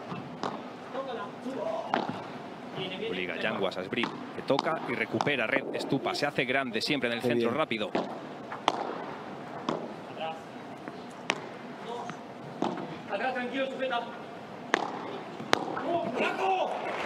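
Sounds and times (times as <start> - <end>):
ball knocking off rackets: 0.4 - 0.6, 1.9 - 2.2, 4.0 - 5.4, 7.9 - 9.9, 10.8 - 13.0, 14.7 - 16.2.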